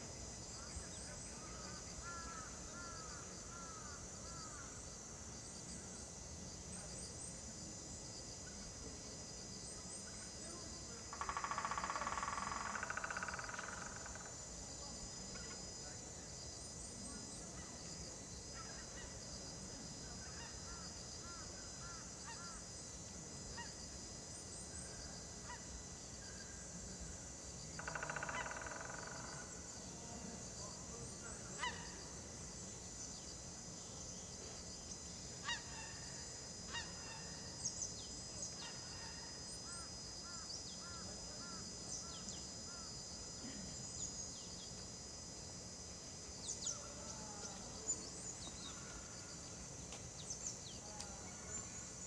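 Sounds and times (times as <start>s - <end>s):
high insect drone: 0.0s - 52.0s.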